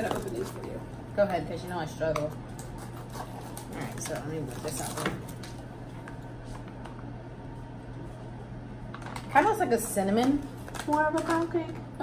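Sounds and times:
steady low hum: 0.0s - 12.0s
food pouch rustling: 10.5s - 11.6s.

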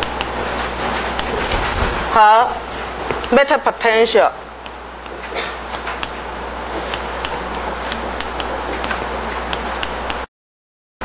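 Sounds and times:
steady hiss and low hum: 0.0s - 10.3s.

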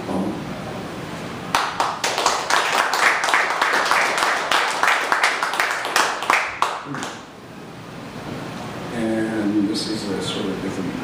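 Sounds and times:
audience applause: 1.5s - 7.2s.

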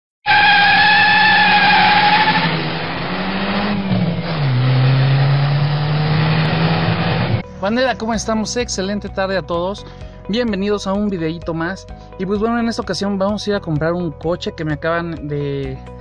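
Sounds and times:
tyre squeal: 0.2s - 2.8s
car engine note: 0.2s - 7.5s
man talking: 7.6s - 15.8s.

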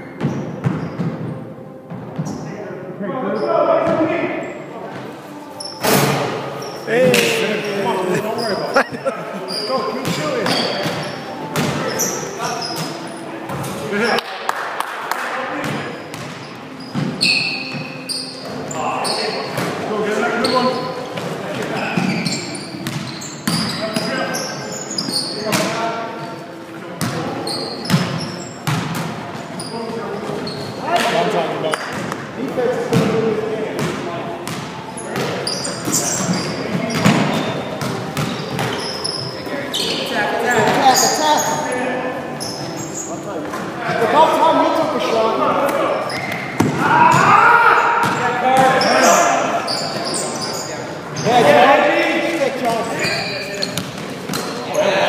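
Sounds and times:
players calling out: 44.0s - 53.9s.

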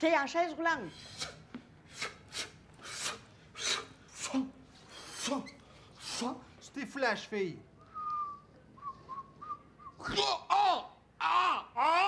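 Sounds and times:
person whistling: 7.9s - 10.1s.

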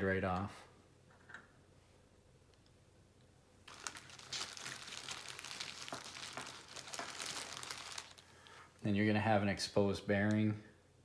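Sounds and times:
plastic packaging crinkling: 3.6s - 8.6s.

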